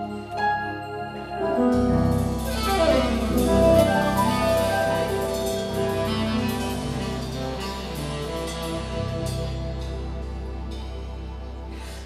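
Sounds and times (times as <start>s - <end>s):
jazz band playing: 0.0s - 12.0s
saxophone melody: 1.5s - 10.7s.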